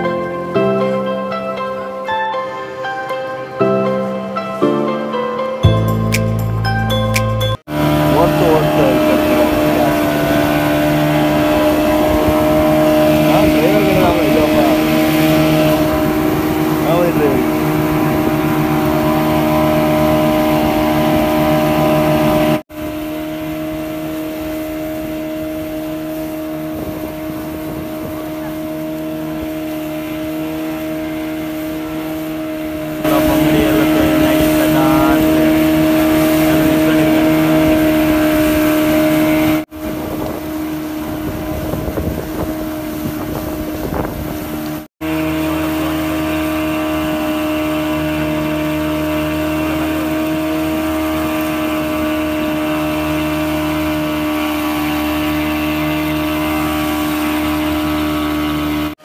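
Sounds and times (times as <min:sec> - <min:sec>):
water noise: 0:00.0 - 0:59.0
boat engine running: 0:03.0 - 0:59.0
wind noise: 0:08.6 - 0:29.7, 0:32.8 - 0:44.9.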